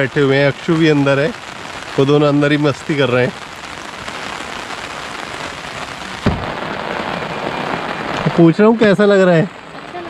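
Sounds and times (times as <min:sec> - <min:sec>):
rain on an umbrella: 0:00.0 - 0:10.0
car door opening thump: 0:06.2 - 0:06.5.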